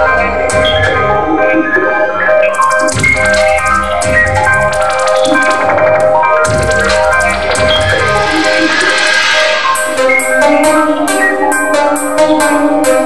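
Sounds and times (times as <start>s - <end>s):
synthpop band playing: 0.0s - 13.0s
fast hi-hat ticks: 2.6s - 5.7s, 6.4s - 13.0s.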